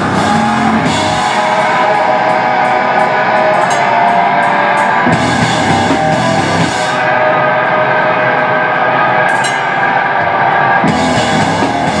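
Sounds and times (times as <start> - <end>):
drums and band hit: 0.0 - 7.2, 10.8 - 12.0
distorted electric guitar ringing: 0.0 - 12.0.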